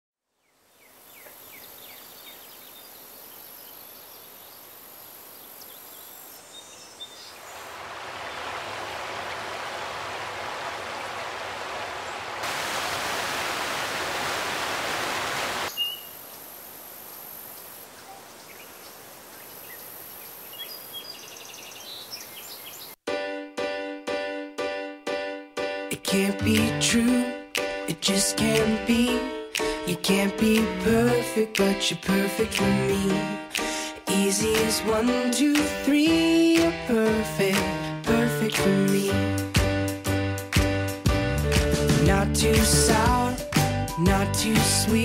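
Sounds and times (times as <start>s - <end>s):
creek running over stones: 7.1s - 20.0s
bird chirps: 15.7s - 16.4s, 17.1s - 23.0s.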